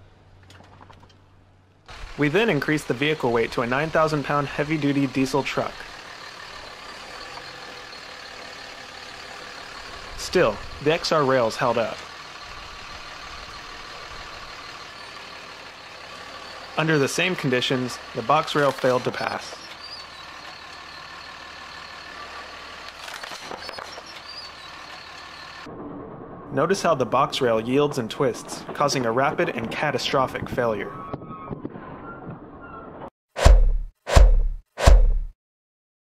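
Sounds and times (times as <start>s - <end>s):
diesel engine running: 0.0s - 25.7s.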